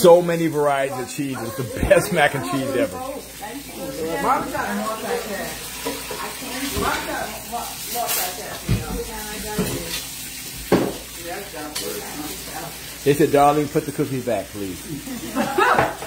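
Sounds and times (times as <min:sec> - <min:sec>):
food sizzling in oil: 0:00.0 - 0:16.0
kitchenware knocks: 0:10.7 - 0:11.0, 0:15.7 - 0:16.0.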